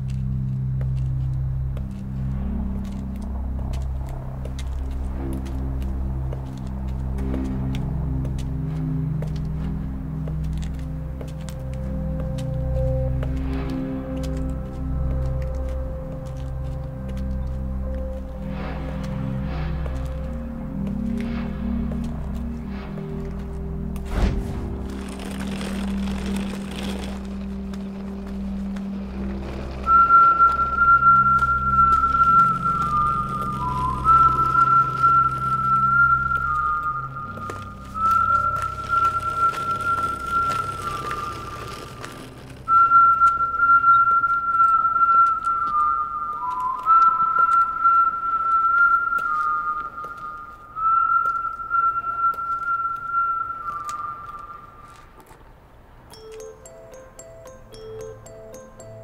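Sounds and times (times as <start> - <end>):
low music drone: 0.0 - 49.2
person whistling slow tune: 29.7 - 55.1.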